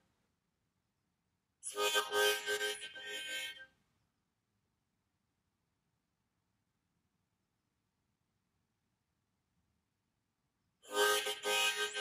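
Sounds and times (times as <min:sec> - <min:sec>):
harmonica short broken chords: 0:01.6 - 0:03.8, 0:10.9 - 0:12.0.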